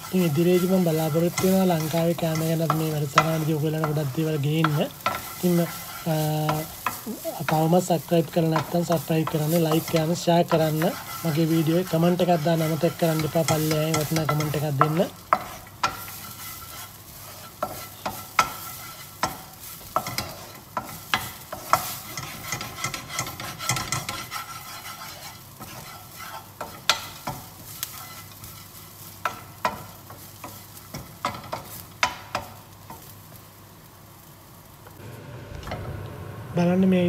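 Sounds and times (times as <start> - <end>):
wooden spoon scraping a pan: 0.0 - 33.2
faint sizzle: 0.0 - 37.0.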